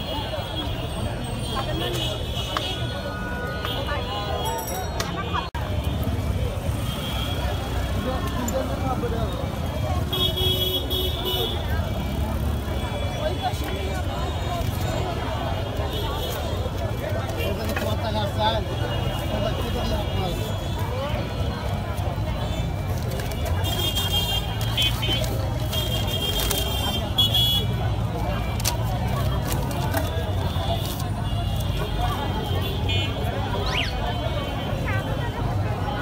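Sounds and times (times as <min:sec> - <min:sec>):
traffic rumble: 0:00.0 - 0:36.0
babble of voices: 0:11.1 - 0:36.0.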